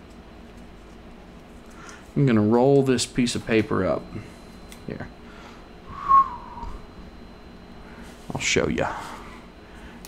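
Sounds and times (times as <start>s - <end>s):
person whistling short note: 5.9s - 6.9s.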